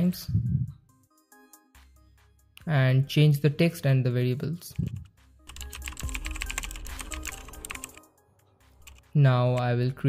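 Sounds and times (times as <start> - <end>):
rapid keyboard typing: 4.8 - 8.1, 8.8 - 9.8.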